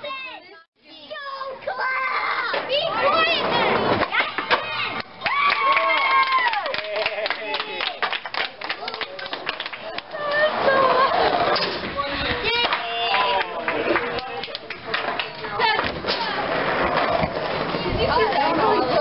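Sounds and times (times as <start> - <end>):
children shouting: 1.3 - 6.7
scattered claps: 4.0 - 10.5, 12.6 - 16.0.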